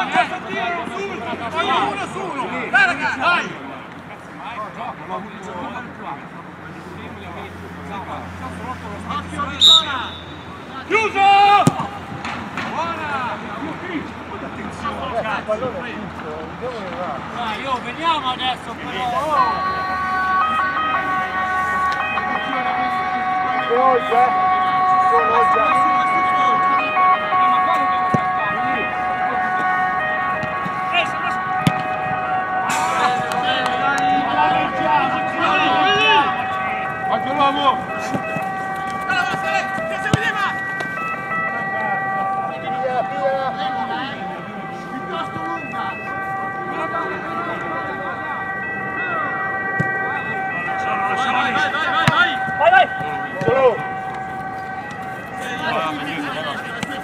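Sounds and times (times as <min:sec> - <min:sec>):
players shouting: 0:08.1 - 0:13.8, 0:17.4 - 0:57.0.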